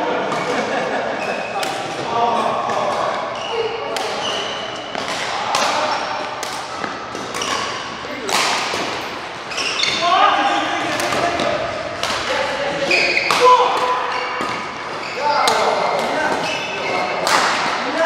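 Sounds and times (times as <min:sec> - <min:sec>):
rackets hitting shuttlecock: 0:01.5 - 0:02.1, 0:02.7 - 0:10.0, 0:10.8 - 0:17.8
shoe squeaks: 0:03.2 - 0:05.0, 0:07.4 - 0:07.9, 0:09.4 - 0:10.2, 0:12.8 - 0:13.4, 0:14.0 - 0:17.2.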